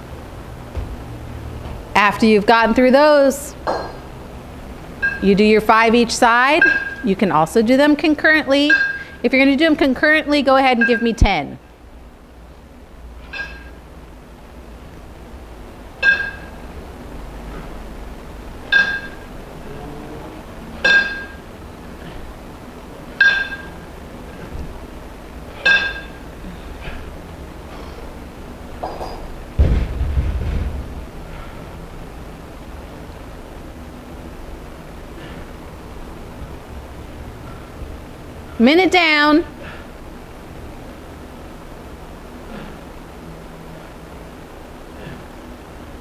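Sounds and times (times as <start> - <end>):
heavy thud on wooden floor: 0.7 - 1.9, 29.6 - 31.0
kettlebells clinking: 5.0 - 5.4, 6.5 - 7.1, 8.6 - 9.2, 10.8 - 11.2, 13.2 - 13.8, 16.0 - 16.7, 18.7 - 19.3, 20.8 - 22.1, 23.1 - 24.5, 25.5 - 26.3.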